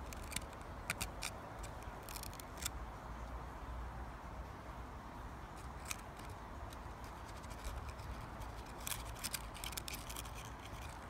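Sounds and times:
rustling of dry leaves: 0.0 - 3.4, 5.3 - 11.0.

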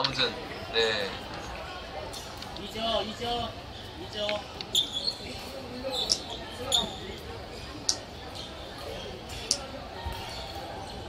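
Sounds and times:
shoe squeaks on wooden court: 4.7 - 7.0.

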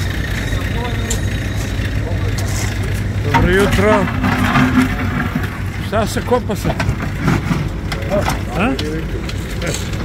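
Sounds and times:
indistinct voices: 0.0 - 10.0
low engine rumble: 0.0 - 10.0.

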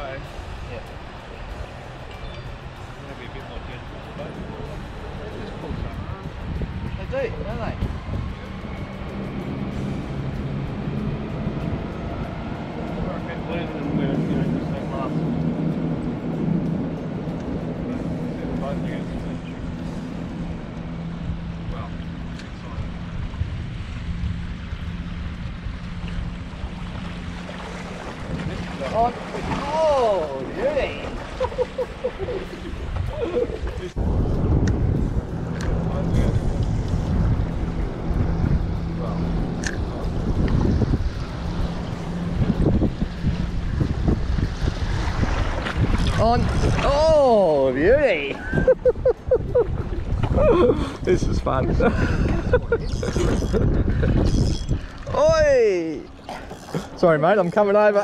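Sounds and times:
steady low hum: 0.0 - 47.6
wind buffeting microphone: 0.0 - 58.0
water slapping boat hull: 10.0 - 50.6.

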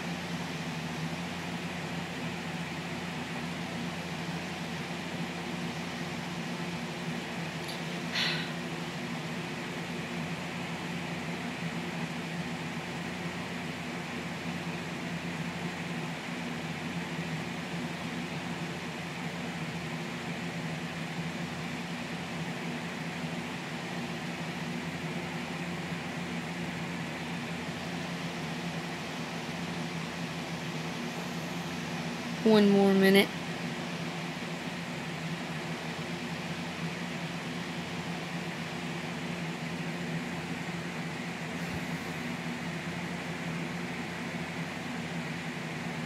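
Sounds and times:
machine hum with hiss: 0.0 - 46.0.

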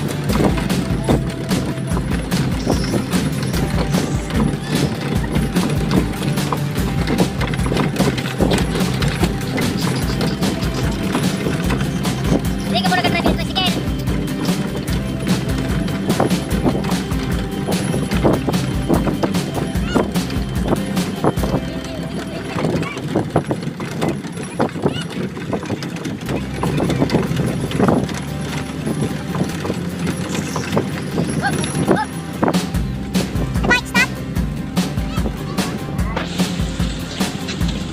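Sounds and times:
boat engine droning: 0.0 - 37.9.

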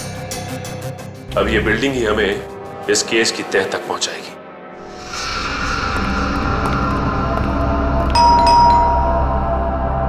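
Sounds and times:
low sustained drone: 4.8 - 10.0
bright chime strikes: 8.2 - 9.6.

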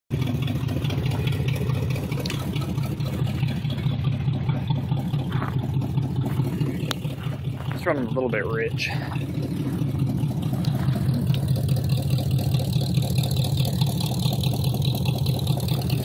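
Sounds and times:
car engine idling: 0.1 - 16.0.

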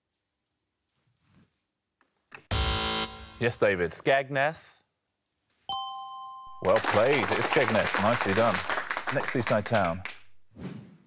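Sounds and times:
quiz buzzer tone: 2.5 - 3.4.

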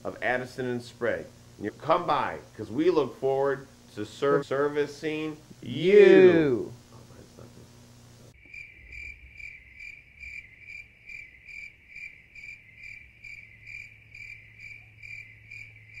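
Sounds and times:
cricket chirping: 8.3 - 16.0.

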